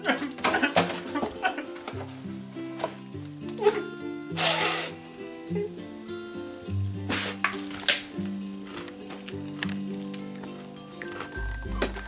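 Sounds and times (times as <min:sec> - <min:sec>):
man sobbing: 0:00.0 - 0:01.8
background music: 0:00.0 - 0:12.0.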